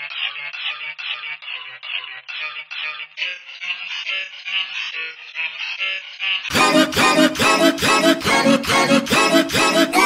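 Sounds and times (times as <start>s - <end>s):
vocoder-processed singing voice: 6.5s - 10.0s.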